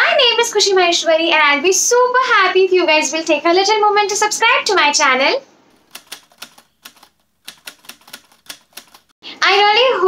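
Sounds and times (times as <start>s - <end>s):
typewriter key clicks: 5.9s - 9.1s.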